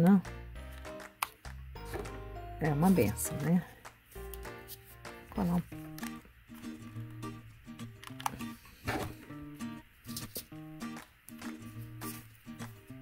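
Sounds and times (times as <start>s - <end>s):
instrumental music: 0.0s - 13.0s.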